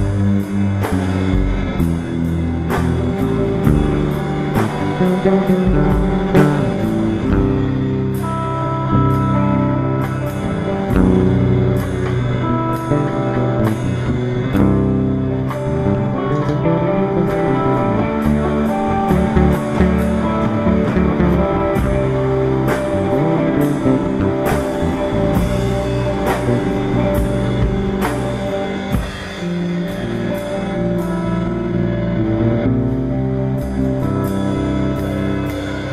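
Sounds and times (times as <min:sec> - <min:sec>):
drum kit beat with cymbals: 0:00.0 - 0:35.9
electric bass line: 0:00.0 - 0:35.9
electric guitar: 0:00.0 - 0:35.9.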